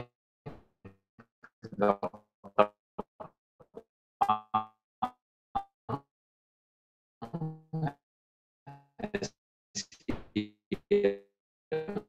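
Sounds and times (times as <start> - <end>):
broken voice over video call: 1.6 - 3.3, 9.0 - 12.0.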